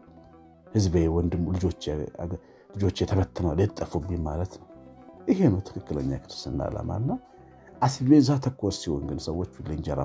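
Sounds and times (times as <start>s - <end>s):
plucked guitar-like accompaniment: 0.0s - 10.0s.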